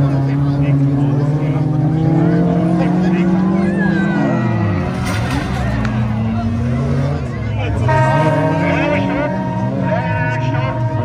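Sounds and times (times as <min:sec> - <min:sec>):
racing car engines: 0:00.0 - 0:11.0.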